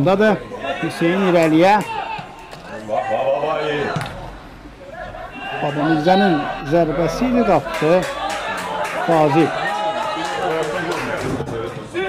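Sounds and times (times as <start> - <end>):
faint stadium crowd background: 0.0 - 12.0.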